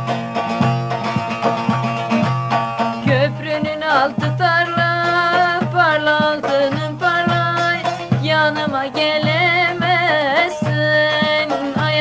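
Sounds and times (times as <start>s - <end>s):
drum strikes: 0.0s - 8.5s
ornamented folk melody: 0.0s - 12.0s.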